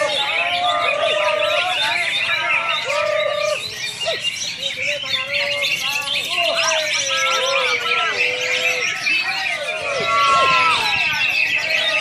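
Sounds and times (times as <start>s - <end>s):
bending whistled bird notes: 0.0s - 12.0s
birds chirping and twittering: 0.0s - 12.0s.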